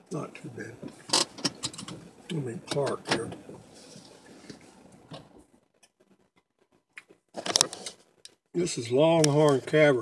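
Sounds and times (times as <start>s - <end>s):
sharp clicks and rubbing: 0.8s - 2.1s, 2.7s - 8.4s.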